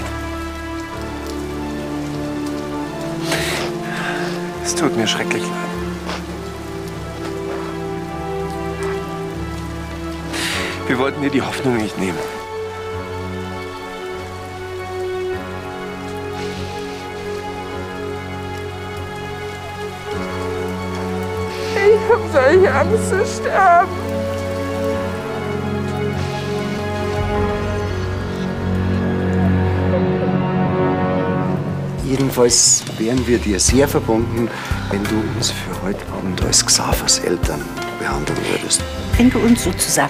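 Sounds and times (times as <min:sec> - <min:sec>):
steady hiss: 0:00.0 - 0:29.2
soft music of held chords: 0:00.0 - 0:40.0
steady rain: 0:00.0 - 0:40.0.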